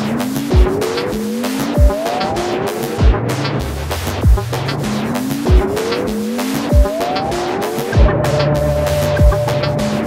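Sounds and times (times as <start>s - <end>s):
gliding synth notes: 0.7s - 10.0s
kick drum thumps: 4.2s - 4.5s, 8.0s - 8.2s, 9.2s - 9.5s.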